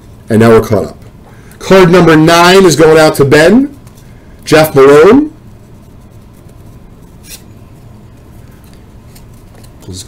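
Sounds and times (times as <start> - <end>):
faint low room hum: 0.0 - 10.0
card sliding papery scrape: 6.2 - 7.6.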